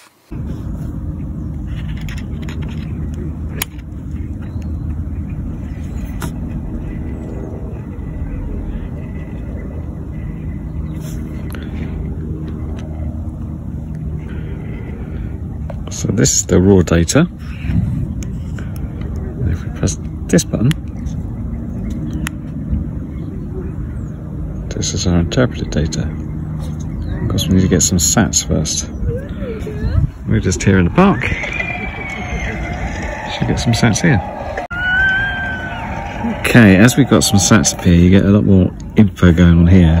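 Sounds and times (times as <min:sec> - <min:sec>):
low outdoor rumble: 0:00.2 - 0:40.0
wind buffeting microphone: 0:28.9 - 0:34.7.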